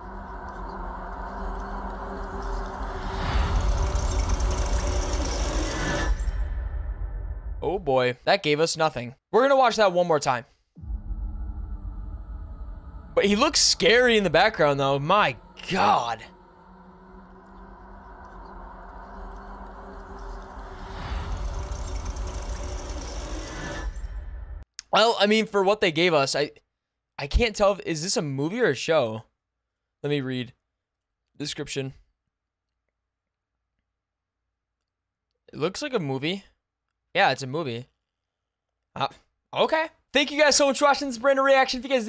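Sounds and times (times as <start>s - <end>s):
deep rumbling drone: 0.0s - 7.8s, 10.8s - 24.6s
dark horror score: 0.0s - 8.0s, 10.8s - 24.6s
grinding clicking mechanical texture: 3.1s - 6.3s, 20.7s - 24.1s.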